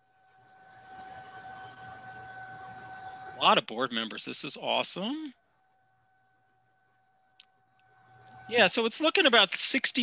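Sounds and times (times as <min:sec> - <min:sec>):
faint high whine: 0:00.0 - 0:10.0.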